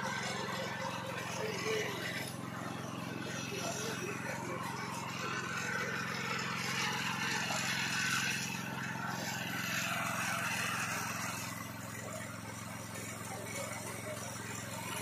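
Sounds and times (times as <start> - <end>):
engine idling: 0.0 - 15.0.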